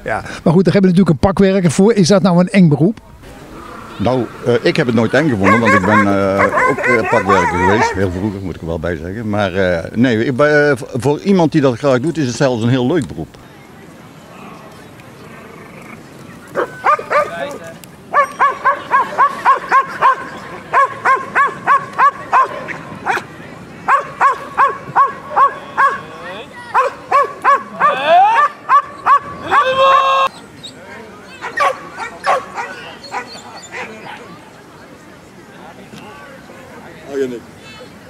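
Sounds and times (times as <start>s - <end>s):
drawn-out call: 3.2s - 8.3s
dog barking rapidly: 5.4s - 8.0s, 16.6s - 17.4s, 18.1s - 23.2s, 23.9s - 26.0s, 26.7s - 29.7s, 31.4s - 33.9s.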